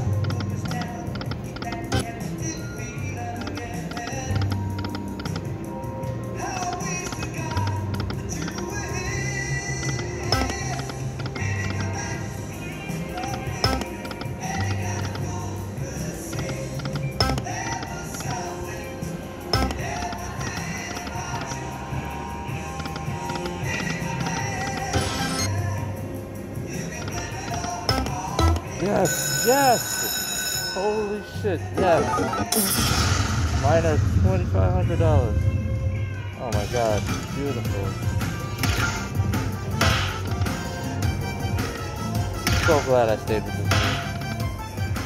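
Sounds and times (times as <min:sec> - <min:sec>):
electronic game music: 0:00.0 - 0:02.4, 0:03.2 - 0:12.3, 0:12.9 - 0:25.6, 0:26.7 - 0:29.8, 0:30.8 - 0:33.9
sharp clicks: 0:00.2 - 0:02.1, 0:03.4 - 0:05.5, 0:06.4 - 0:08.7, 0:09.8 - 0:12.0, 0:16.3 - 0:18.4, 0:22.8 - 0:25.2
slot machine reel-spin jingles: 0:28.4 - 0:31.2.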